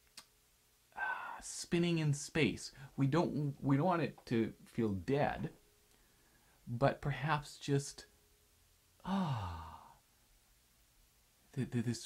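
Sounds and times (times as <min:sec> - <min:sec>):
man sighing: 0:01.0 - 0:01.4, 0:09.0 - 0:10.0.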